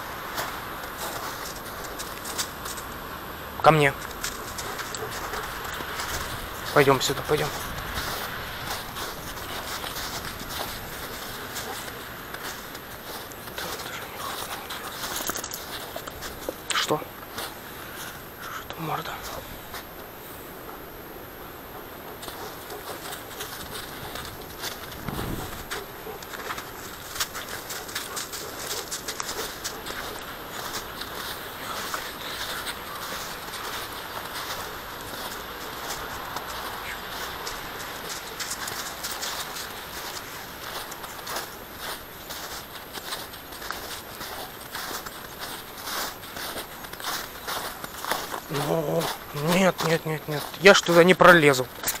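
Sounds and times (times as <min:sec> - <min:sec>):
footsteps crunching through snow: 0:00.0 - 0:20.6, 0:21.9 - 0:52.0
crackles and rustling: 0:00.0 - 0:20.9, 0:21.6 - 0:52.0
dull thump: 0:25.0 - 0:25.7.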